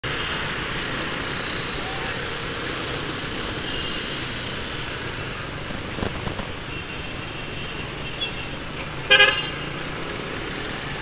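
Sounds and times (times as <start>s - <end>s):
scooter engine and road noise: 0.1s - 11.0s.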